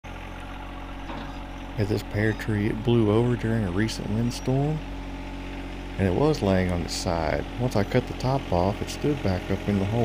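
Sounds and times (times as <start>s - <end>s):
tractor diesel engine running: 0.0s - 10.0s
front loader raising bucket: 0.1s - 7.8s.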